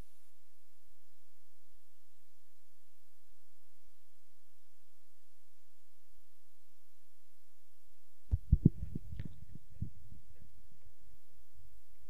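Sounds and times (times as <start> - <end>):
faint steady hum: 0.0 - 12.0
dull low thumps: 8.3 - 10.3.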